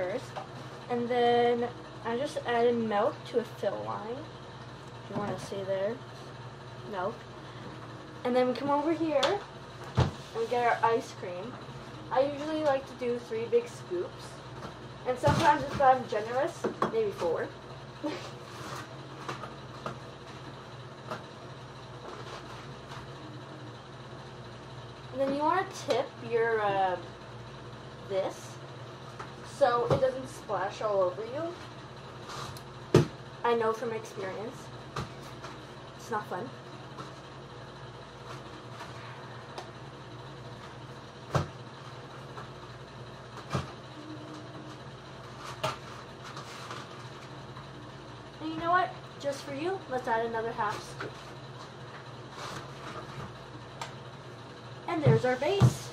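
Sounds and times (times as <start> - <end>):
low appliance hum: 0.0 - 55.9.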